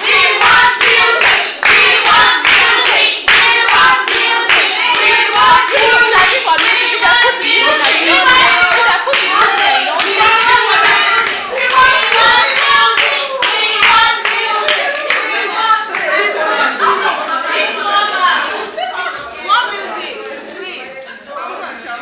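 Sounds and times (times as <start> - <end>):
women singing together: 0.0 - 22.0.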